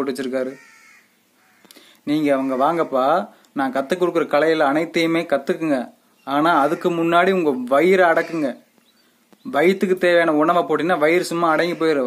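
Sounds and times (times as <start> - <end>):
man speaking: 0.0 - 0.6, 2.0 - 8.7, 9.5 - 12.0.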